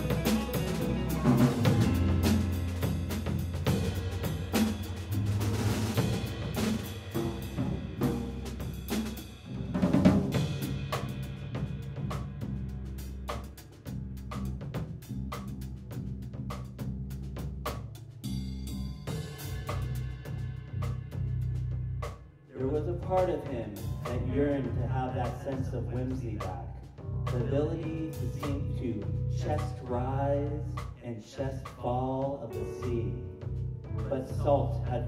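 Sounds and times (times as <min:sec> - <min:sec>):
drum kit hits: 0:00.0 - 0:31.0, 0:31.7 - 0:35.0
jazz combo playing: 0:00.0 - 0:35.0.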